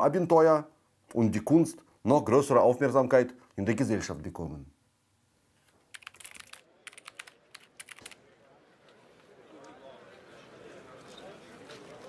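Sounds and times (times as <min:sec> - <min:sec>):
typing on laptop keyboard: 0:05.9 - 0:08.2.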